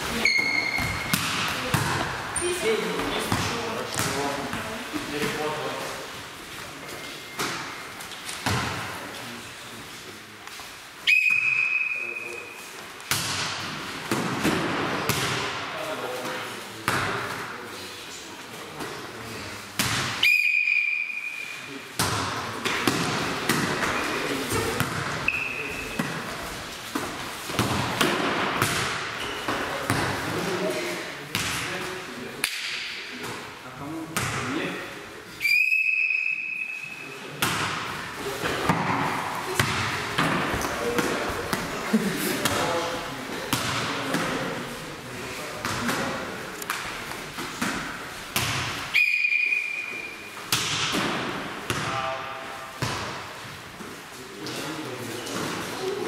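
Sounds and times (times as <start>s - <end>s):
volleyball being struck: 0.2s - 2.1s, 50.5s - 52.0s
whistle blasts: 11.0s - 12.5s, 20.2s - 21.6s, 25.3s - 25.6s, 35.4s - 37.0s, 48.9s - 50.3s.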